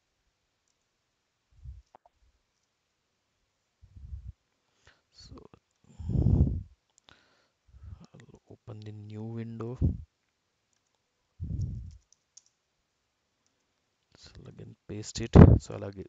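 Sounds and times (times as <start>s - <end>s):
man murmuring: 7.9s - 10.0s, 14.2s - 16.0s
man making hesitation sound: 9.6s - 10.0s, 15.2s - 15.9s.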